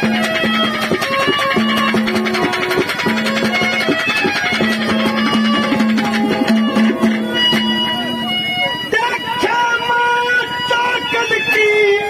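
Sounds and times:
musical accompaniment: 0.0 - 12.0.

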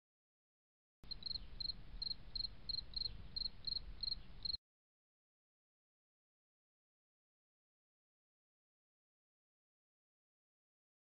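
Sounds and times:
insect chirping: 1.1 - 4.6.

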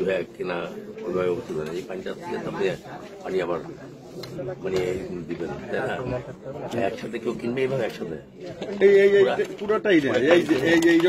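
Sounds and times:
men talking over each other: 0.0 - 11.0.

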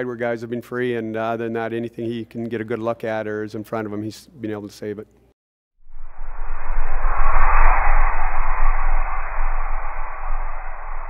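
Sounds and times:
whoosh and rumble sound effect: 5.8 - 11.0.

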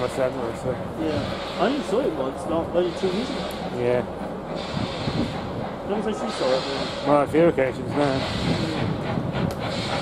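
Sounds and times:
people chatting: 0.0 - 4.1, 5.9 - 8.8.

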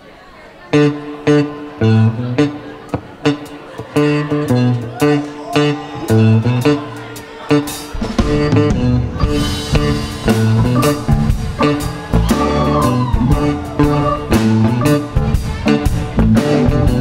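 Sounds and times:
bass guitar: 0.7 - 17.0
electric guitar: 0.7 - 17.0
drums: 2.9 - 17.0.

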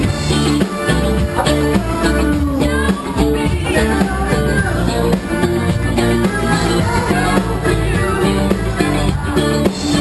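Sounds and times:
drums: 0.0 - 10.0
electric guitar: 0.0 - 10.0
rock band playing live: 0.0 - 10.0.

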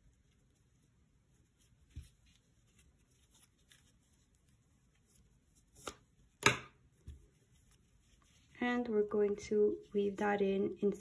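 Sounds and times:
yarn and crochet hook handling: 1.3 - 10.0.

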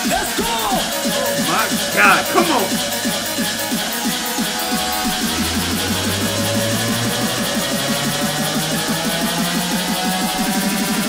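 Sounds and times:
layered beatbox vocal loops: 0.0 - 11.0.

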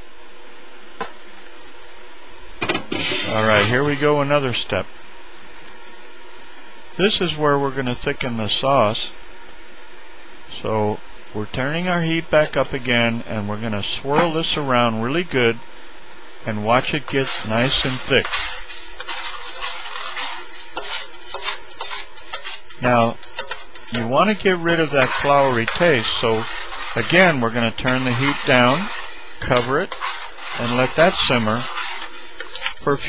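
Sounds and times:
spoon scraping a skillet: 2.8 - 4.4, 16.5 - 33.0.

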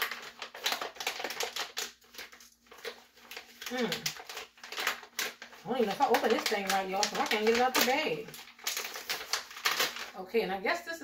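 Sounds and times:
plastic bag crinkling: 0.0 - 10.3.

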